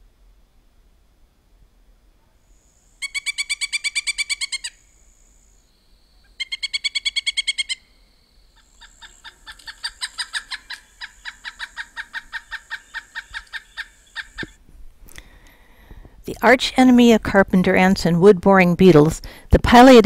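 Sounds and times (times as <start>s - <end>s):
woodpecker calling: 2.7s - 14.6s.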